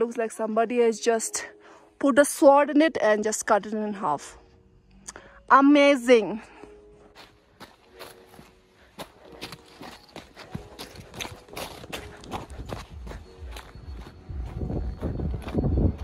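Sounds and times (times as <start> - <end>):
footsteps crunching on gravel: 7.1 - 16.0.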